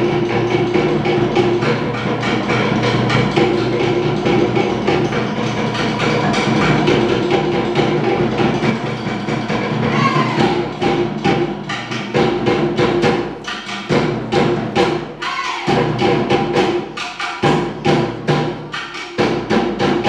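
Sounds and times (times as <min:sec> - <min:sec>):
deep drums: 0:00.0 - 0:20.0.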